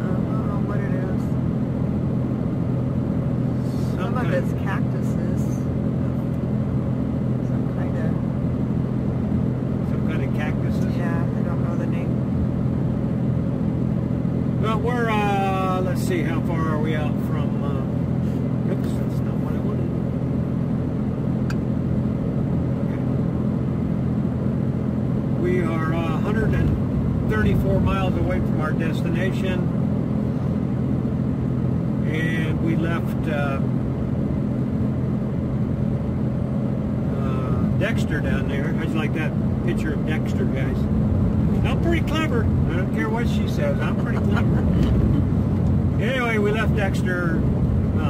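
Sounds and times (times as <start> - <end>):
engine and tyre drone in cabin: 0.0 - 48.0
person speaking: 3.7 - 5.5, 41.6 - 45.1.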